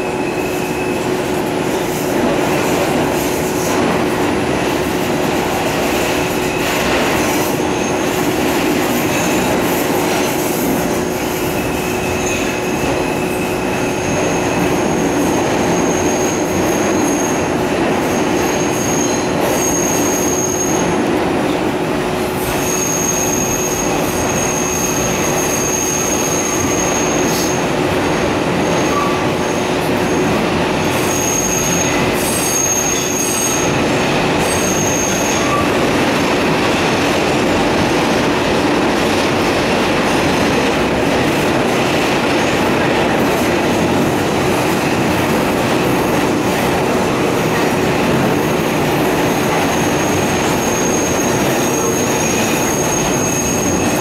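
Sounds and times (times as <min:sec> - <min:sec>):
rumble of train wheels on rail: 0:00.0 - 0:54.0
high-pitched wheel squeal: 0:18.2 - 0:20.9, 0:22.5 - 0:27.6, 0:30.8 - 0:35.9, 0:49.7 - 0:54.0.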